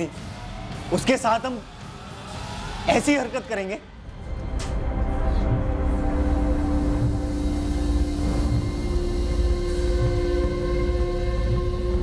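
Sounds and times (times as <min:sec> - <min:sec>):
dark drone chord: 0:04.0 - 0:12.0.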